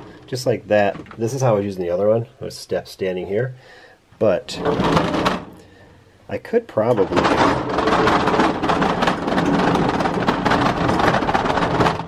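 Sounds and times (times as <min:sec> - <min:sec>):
plastic bins rattling: 0:00.0 - 0:02.1, 0:04.2 - 0:12.0
tool cart rolling on concrete: 0:04.5 - 0:05.6, 0:06.8 - 0:12.0.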